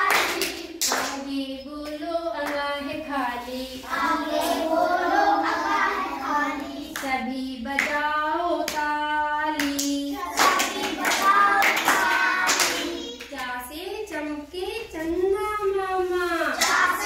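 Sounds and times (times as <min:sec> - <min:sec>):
children singing a chant: 0:00.0 - 0:02.3, 0:03.6 - 0:07.4, 0:09.8 - 0:13.2, 0:16.5 - 0:17.0
hand claps: 0:09.6 - 0:13.4.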